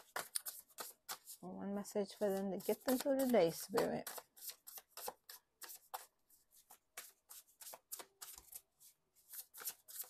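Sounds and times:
cards being shuffled: 0.0s - 1.4s, 2.6s - 8.6s, 9.2s - 10.0s.

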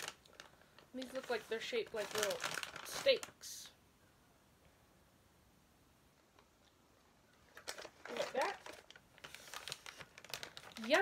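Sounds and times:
treat bag crinkling: 0.0s - 3.7s, 7.3s - 11.0s.

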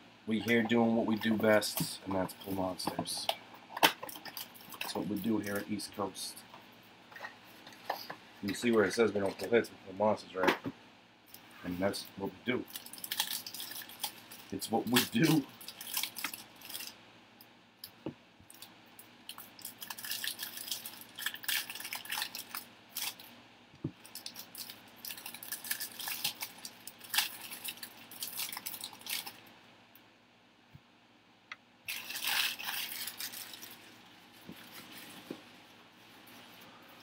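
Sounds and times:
plastic wrappers crinkling and tearing: 3.8s - 5.8s, 11.4s - 17.0s, 19.3s - 23.3s, 24.0s - 29.5s, 31.9s - 35.3s.

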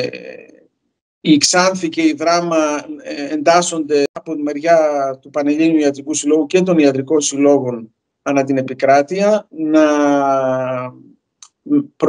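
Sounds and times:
man speaking hesitantly: 0.0s - 0.5s, 1.3s - 12.0s.

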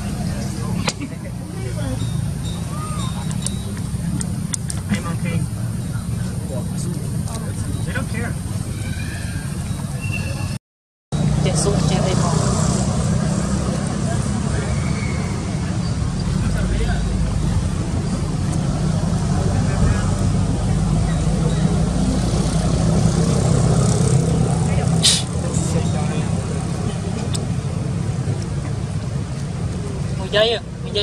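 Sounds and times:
people's voices: 0.0s - 10.6s, 11.2s - 31.0s.

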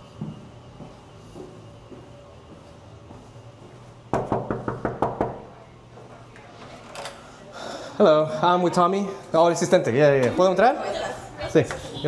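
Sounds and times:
knocking on wooden door: 4.1s - 5.4s.

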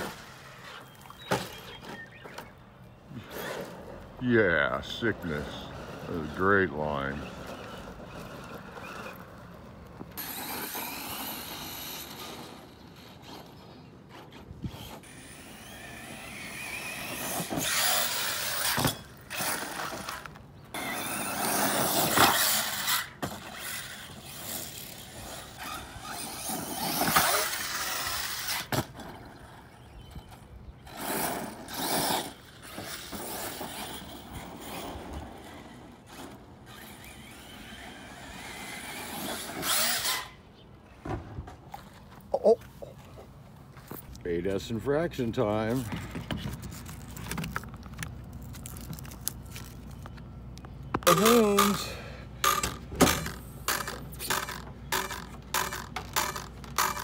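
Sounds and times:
rc car electric motor whining: 10.2s - 30.2s, 30.9s - 40.4s.

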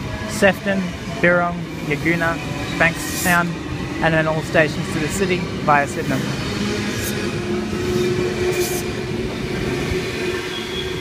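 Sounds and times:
electric train passing: 0.0s - 11.0s.

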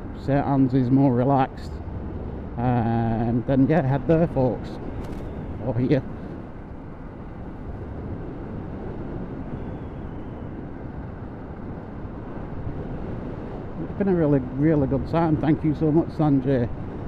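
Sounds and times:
motorcycle road noise: 0.0s - 17.0s
wind rush: 0.0s - 17.0s.

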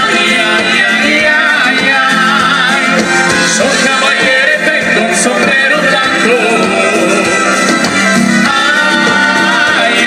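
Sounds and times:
electric guitars: 0.0s - 10.0s
live dance band playing: 0.0s - 10.0s
person singing: 0.0s - 10.0s.

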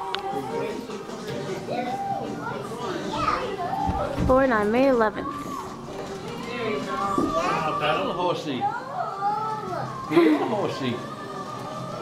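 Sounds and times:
young children babbling: 8.7s - 10.4s.

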